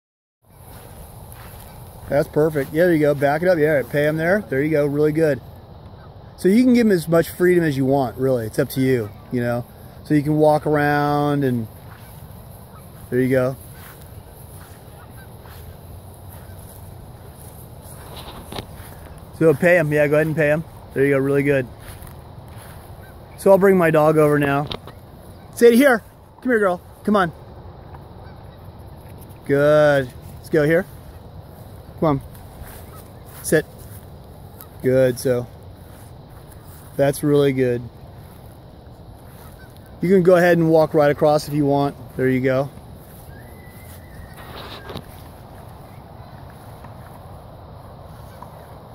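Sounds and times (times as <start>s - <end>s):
faint short calls: 8.9s - 29.4s, 39.2s - 40.0s, 42.3s - 48.9s.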